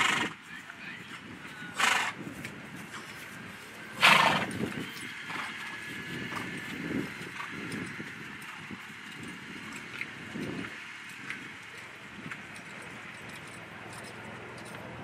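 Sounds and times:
horse snorting: 0.0 - 0.4, 1.8 - 2.2, 4.0 - 6.6
hoofbeats on grass: 0.0 - 15.0.

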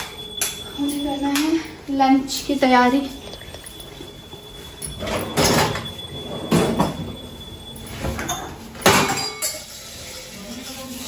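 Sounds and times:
steel utensils scraping: 4.6 - 11.0.

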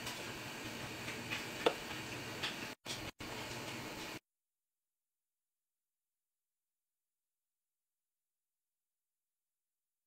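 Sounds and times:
broth boiling in a pot: 0.0 - 4.2.

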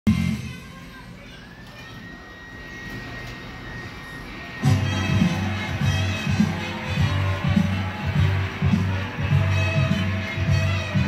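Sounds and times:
faint high-pitched tone: 0.1 - 5.5.

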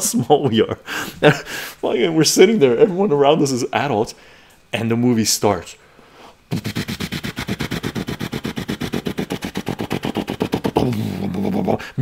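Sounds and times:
man imitating helicopter rotor: 6.5 - 12.0.

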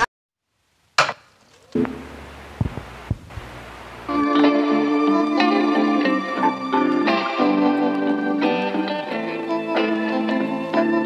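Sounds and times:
sound system hum: 0.0 - 11.0
music: 4.1 - 11.0.

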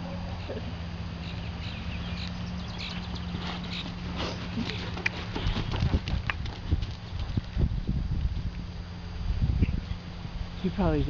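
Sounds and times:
horse trotting on sand: 2.2 - 8.6.

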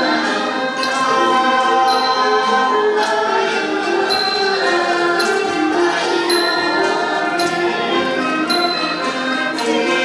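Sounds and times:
bright metallic timekeeping strokes: 0.0 - 10.0
traditional ensemble playing: 0.0 - 10.0.

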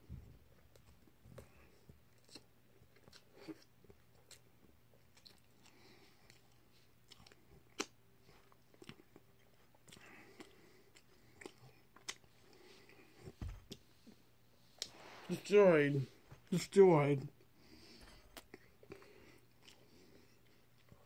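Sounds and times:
person chewing food: 0.6 - 14.2, 17.4 - 21.0.

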